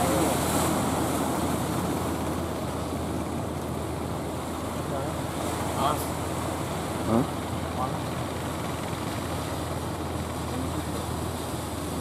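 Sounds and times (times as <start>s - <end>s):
sea surf rushing: 0.0s - 12.0s.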